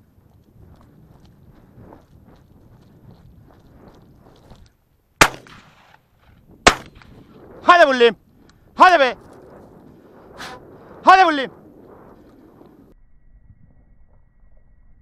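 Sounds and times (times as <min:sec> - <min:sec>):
shotgun shots: 0:05.2 - 0:06.0, 0:06.6 - 0:07.2
man shouting: 0:07.6 - 0:08.2, 0:08.8 - 0:09.2, 0:11.0 - 0:11.5.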